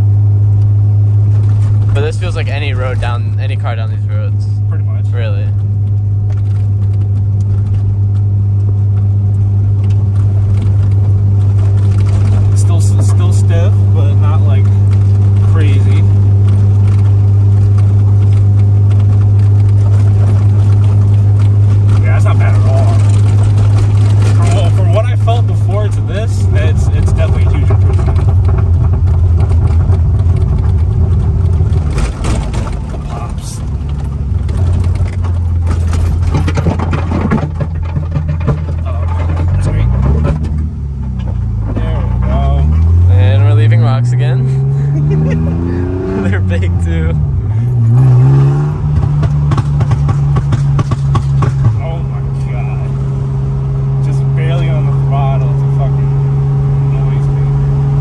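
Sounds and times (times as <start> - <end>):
car engine from inside cabin: 0.0 - 58.0.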